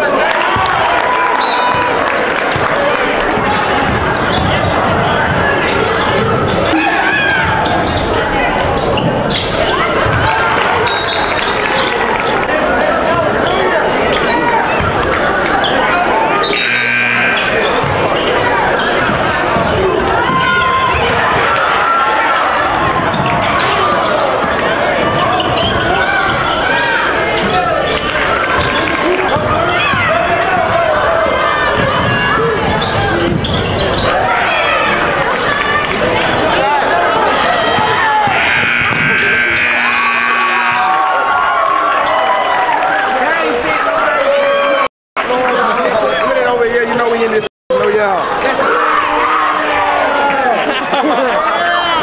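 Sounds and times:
crowd chatter: 0.0 - 52.0.

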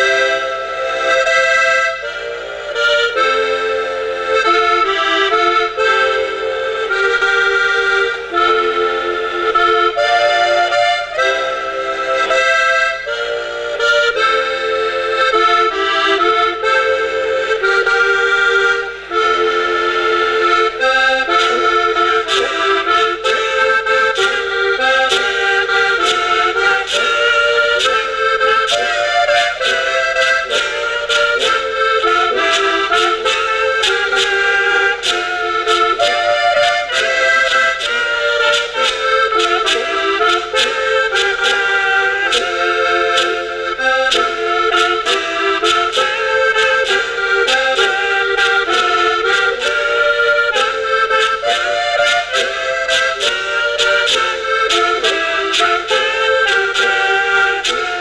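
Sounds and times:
button accordion folk tune: 0.0 - 58.0
hand percussion clicking: 20.0 - 58.0.

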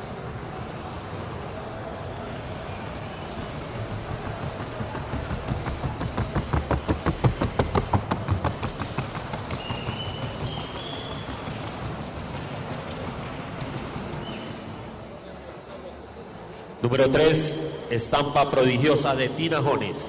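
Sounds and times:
horse hoofbeats: 3.2 - 14.9.

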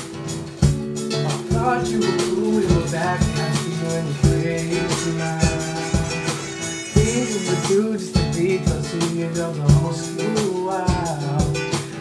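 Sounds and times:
strummed reggae guitar chords: 0.0 - 12.0
person singing: 1.1 - 12.0.

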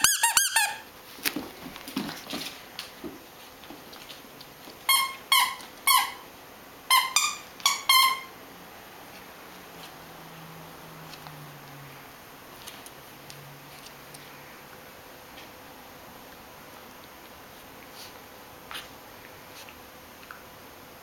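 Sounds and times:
dog toy squeaking: 0.0 - 0.8, 4.9 - 6.2, 6.9 - 8.3.

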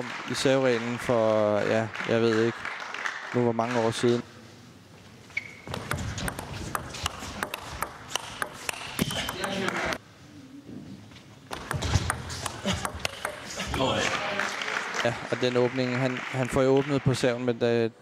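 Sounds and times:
table tennis ball clicking: 5.7 - 10.0, 11.5 - 13.5.

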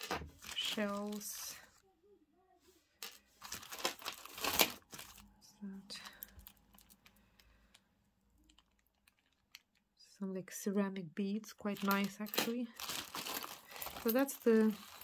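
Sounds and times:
plastic bag crinkling: 0.0 - 1.6, 3.0 - 9.8, 11.6 - 15.0.

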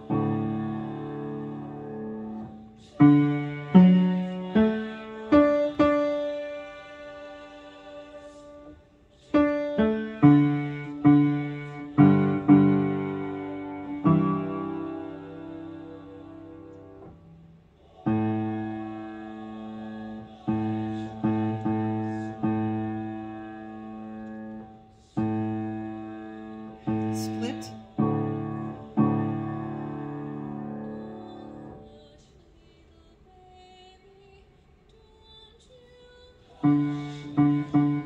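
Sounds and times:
upright piano low chords: 0.0 - 7.3, 9.3 - 31.9, 36.6 - 38.0.

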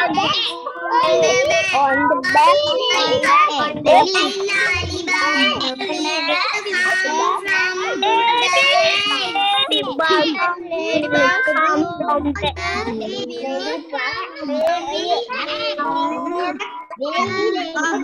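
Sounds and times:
children reading aloud together: 0.0 - 18.0.

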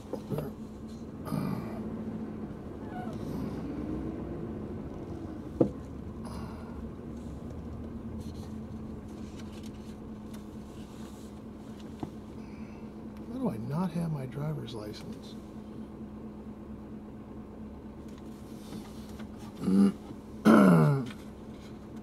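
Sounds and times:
faint whine: 0.0 - 21.8
car running hum: 0.0 - 22.0.

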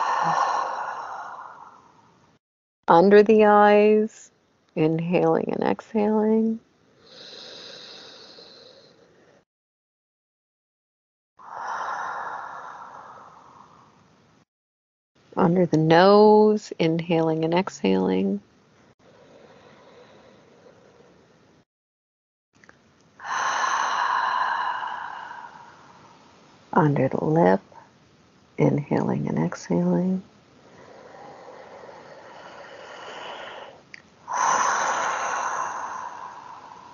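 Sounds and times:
slow deep breath: 0.0 - 2.2, 7.0 - 9.4, 11.4 - 14.0, 19.0 - 21.3, 23.2 - 26.3, 30.6 - 36.9.

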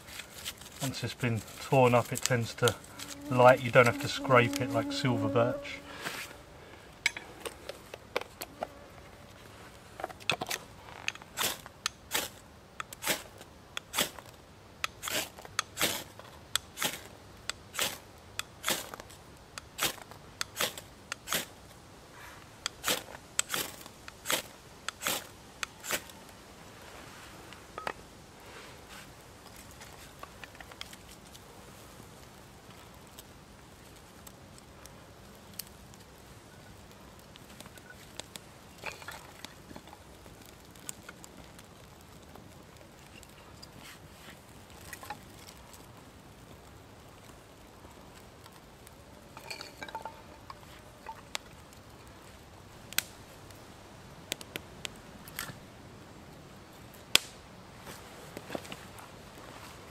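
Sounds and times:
ferro rod scraping: 1.6 - 6.4
bark crackling and popping: 32.1 - 43.8, 44.4 - 55.6, 56.9 - 57.4.

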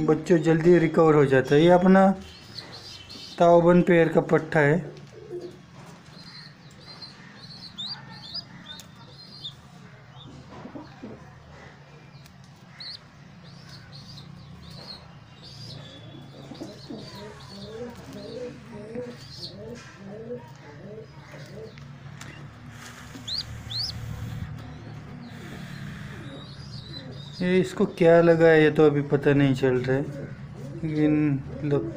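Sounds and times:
young pigeon peeping: 0.0 - 4.2, 4.9 - 31.9
steady low hum: 21.7 - 27.4.

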